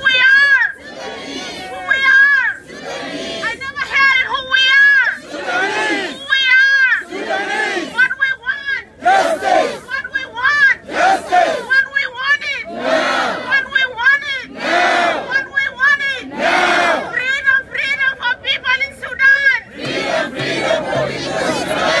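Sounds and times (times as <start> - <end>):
crowd shouting: 0.0 - 11.9, 12.6 - 17.4, 19.6 - 22.0.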